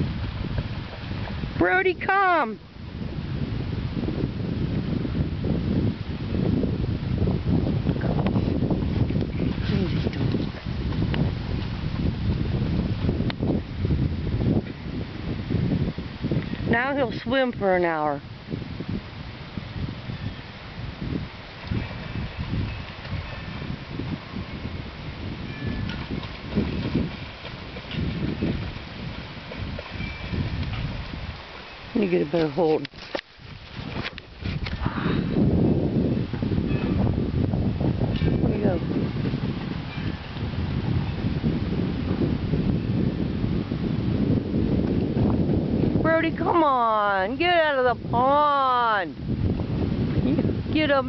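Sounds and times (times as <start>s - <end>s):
wind buffeting microphone: 0.0s - 51.0s.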